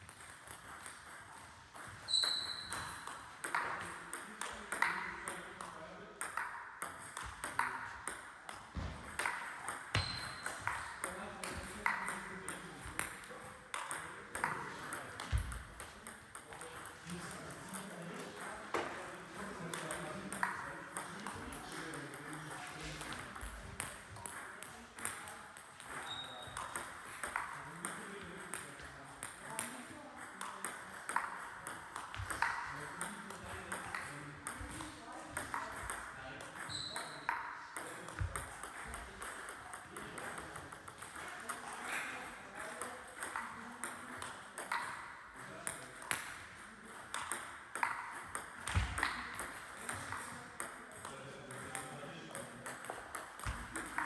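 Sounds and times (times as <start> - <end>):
table tennis ball clicking: 52.6 - 54.0.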